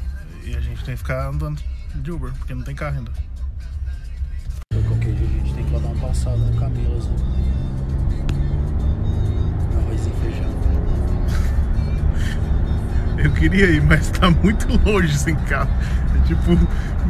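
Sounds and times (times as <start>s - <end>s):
music playing: 0.0s - 17.0s.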